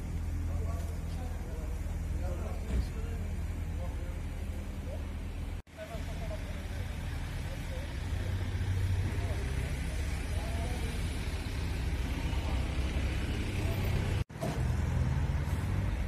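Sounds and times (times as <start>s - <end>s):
vehicle engine idling: 0.0s - 16.0s.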